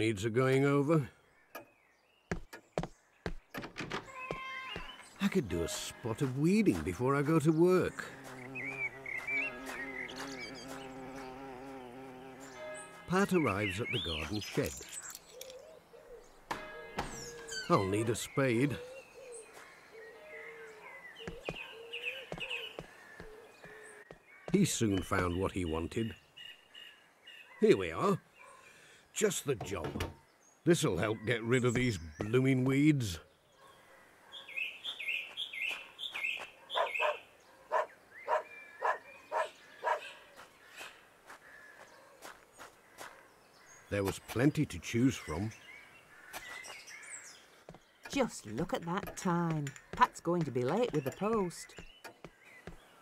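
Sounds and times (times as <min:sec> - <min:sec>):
high falling bird chirps: 0:00.0 - 0:28.7, 0:29.4 - 0:53.0
wooden door creaking: 0:03.5 - 0:04.9, 0:29.5 - 0:30.2.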